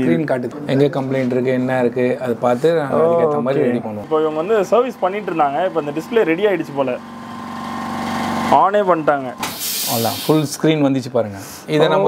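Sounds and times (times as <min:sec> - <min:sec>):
machine humming: 0:02.8 - 0:10.6
short hiss: 0:09.4 - 0:10.5.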